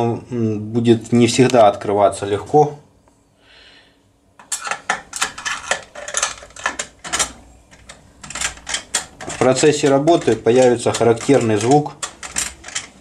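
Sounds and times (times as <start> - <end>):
lock picks clicking in keyhole: 5.1 - 13.0.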